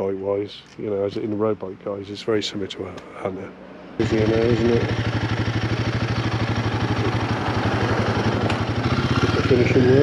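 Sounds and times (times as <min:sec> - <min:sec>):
motorcycle engine running at low revs: 0:04.0 - 0:10.0.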